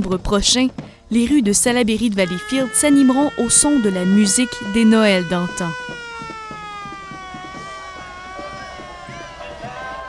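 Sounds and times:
mechanical siren winding down: 2.2s - 10.0s.

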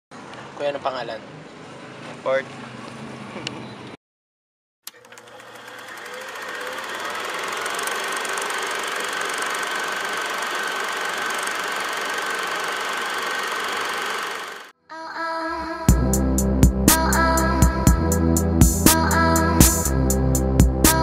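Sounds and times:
mechanical running noise with whine: 4.9s - 14.7s.

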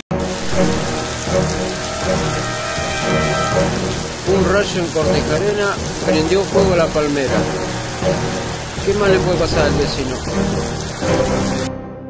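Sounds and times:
heavy rain falling: 0.1s - 11.8s.

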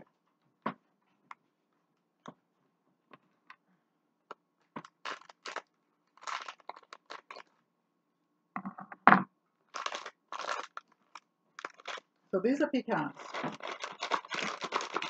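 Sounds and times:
plastic bag crinkling: 4.8s - 7.5s, 9.7s - 12.1s, 13.1s - 15.0s.

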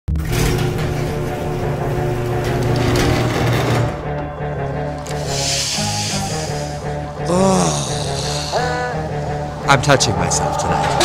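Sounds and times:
trailer music with low notes: 0.1s - 11.0s
hissing swell: 4.9s - 7.2s, 7.9s - 11.0s.

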